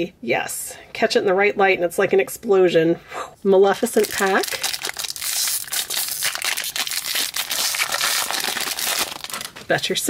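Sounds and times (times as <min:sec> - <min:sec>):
foil pack crinkling and tearing: 0:03.8 - 0:09.8.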